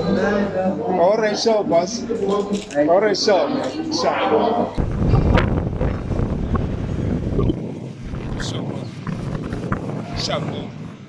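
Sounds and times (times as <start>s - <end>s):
wind buffeting a microphone: 4.8s - 11.0s.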